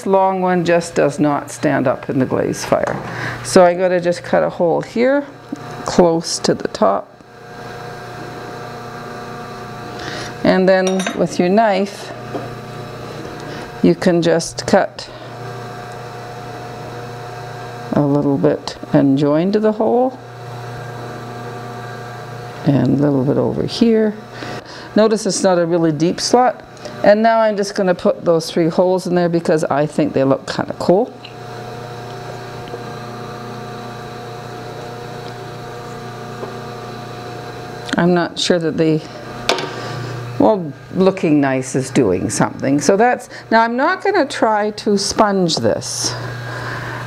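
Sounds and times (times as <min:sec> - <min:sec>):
electrical hum: 0:00.0 - 0:47.0.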